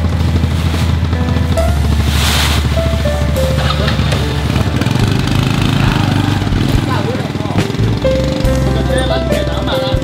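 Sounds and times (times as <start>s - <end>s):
background music: 0.0s - 10.0s
small motorcycle engine idling: 0.0s - 10.0s.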